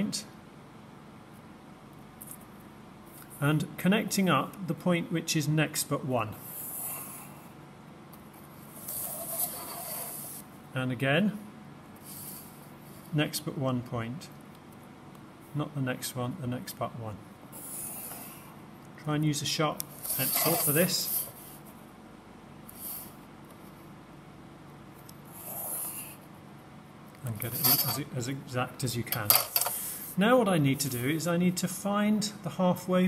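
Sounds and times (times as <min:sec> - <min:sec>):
pencil scratching on paper: 0:08.7 - 0:10.4, 0:20.0 - 0:21.6, 0:25.3 - 0:26.2.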